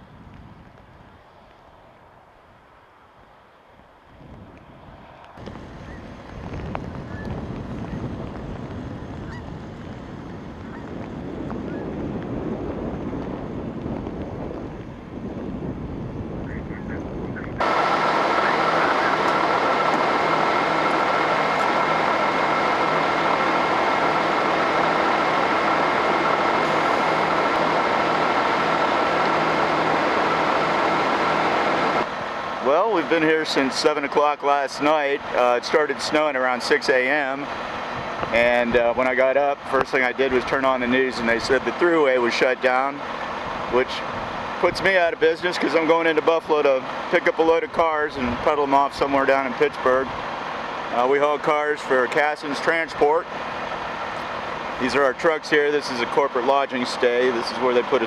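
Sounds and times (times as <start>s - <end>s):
storm wind: 0.0s - 58.0s
truck engine idling: 16.8s - 58.0s.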